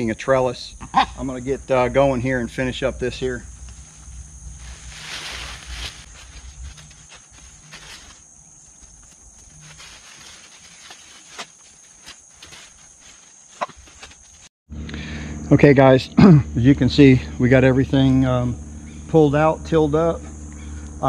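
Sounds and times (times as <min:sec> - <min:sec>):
insect chorus droning: 0:00.0 - 0:21.0
vines rustling and snapping: 0:03.6 - 0:14.5.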